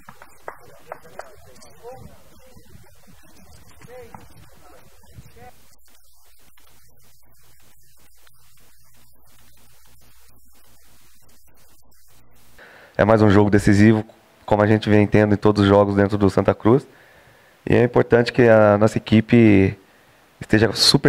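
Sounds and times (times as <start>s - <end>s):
men's voices: 0.1s - 5.8s, 12.6s - 17.0s.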